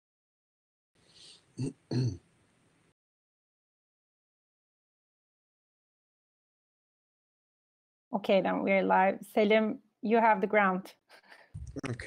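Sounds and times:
person clearing throat: 1.6 - 2.2.

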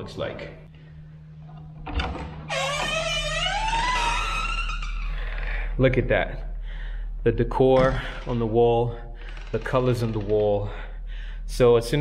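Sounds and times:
door creaking open: 1.5 - 5.6, 7.7 - 8.6, 9.2 - 10.8.

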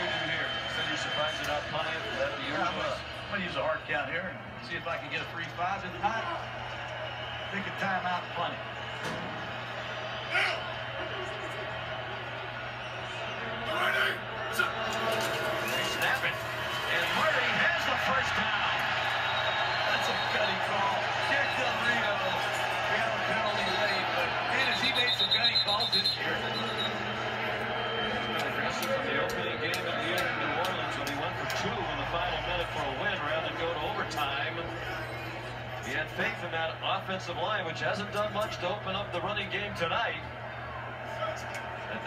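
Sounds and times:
stadium crowd cheering: 0.0 - 42.0.

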